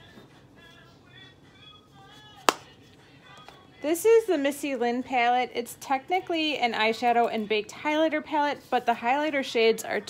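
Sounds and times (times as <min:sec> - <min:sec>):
faint background music: 0:00.0 - 0:10.0
palette lid snapping shut: 0:02.5 - 0:02.7.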